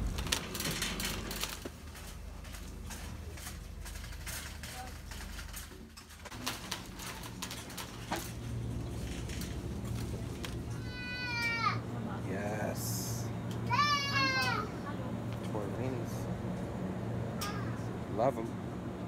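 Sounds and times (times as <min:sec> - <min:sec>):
shopping cart clicks and rattles: 0:00.0 - 0:10.8
low steady hum: 0:00.0 - 0:19.0
faint voices: 0:09.6 - 0:16.4.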